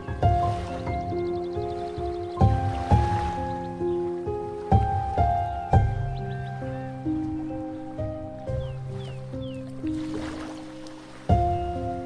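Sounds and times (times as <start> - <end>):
ocean waves: 0.0 - 12.0
slow solo piano music: 0.0 - 12.0.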